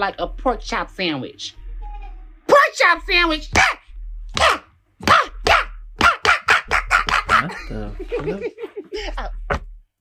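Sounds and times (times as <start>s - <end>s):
man laughing: 7.3s - 9.5s.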